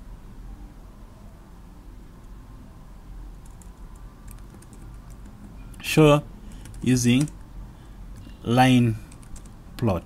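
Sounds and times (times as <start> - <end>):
low background hum: 0.0 - 10.0
computer keyboard keystrokes: 3.4 - 5.6, 6.6 - 7.4, 9.1 - 9.6.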